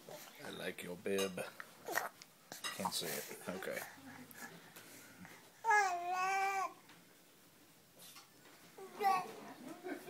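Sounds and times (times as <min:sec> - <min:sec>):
baby whining: 0:05.6 - 0:06.8.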